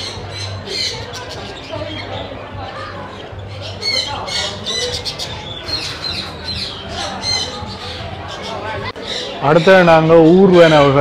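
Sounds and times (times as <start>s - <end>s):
cockatiels squawking: 3.5s - 9.4s.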